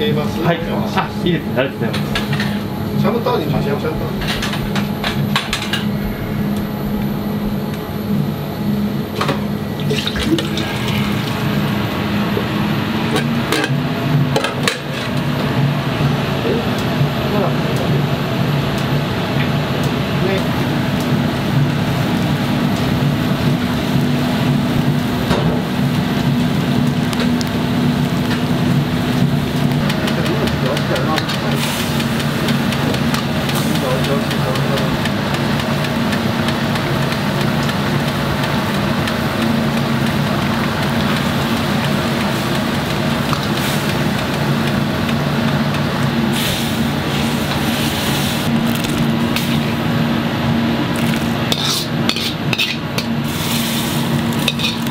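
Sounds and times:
gas wok burner roaring: 0.0 - 54.9
kitchen extractor hum: 0.0 - 54.9
ladle clinking against wok: 54.4 - 54.9.

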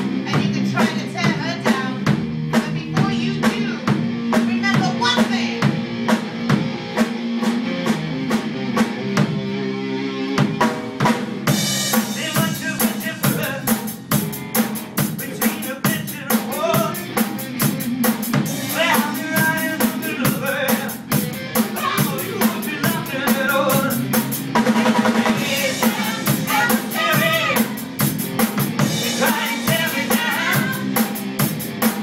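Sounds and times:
drum kit beat: 0.0 - 32.0
electric guitars: 0.0 - 32.0.

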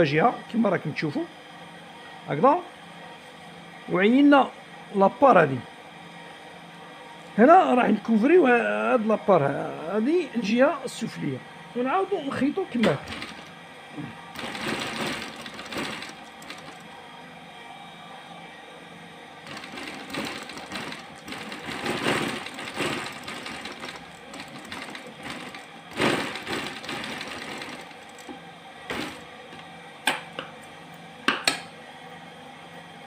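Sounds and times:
sewing machine stitching: 12.8 - 13.5, 14.4 - 16.9, 19.5 - 28.3, 28.9 - 29.2.

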